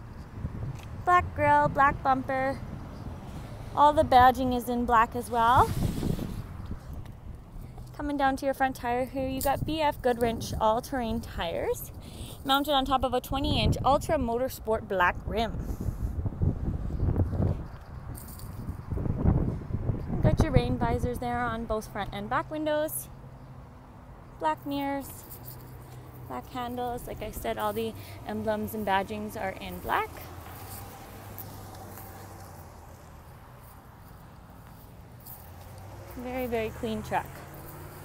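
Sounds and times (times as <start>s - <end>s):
wind buffeting microphone: 0.0s - 22.2s.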